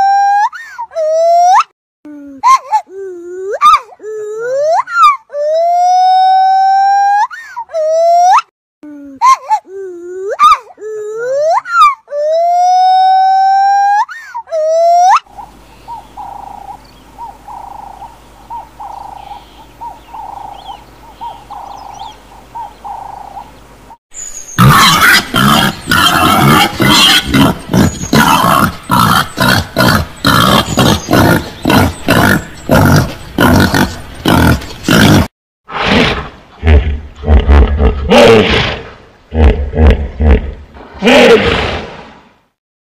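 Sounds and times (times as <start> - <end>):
swooping monkey calls: 11.3 - 23.6
dove cooing: 15.3 - 23.6
peccaries grunting rapidly: 24.6 - 41.8.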